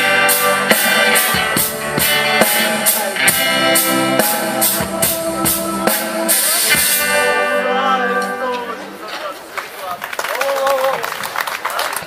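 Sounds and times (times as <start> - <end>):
band holding final chord: 0.0 - 9.1.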